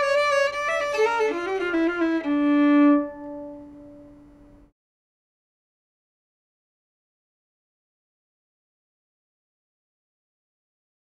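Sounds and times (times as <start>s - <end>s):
bowed violin: 0.0s - 4.7s.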